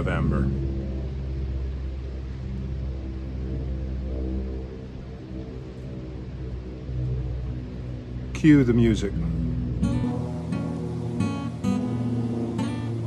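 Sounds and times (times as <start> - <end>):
steady low drone of held tones: 0.0 - 13.0.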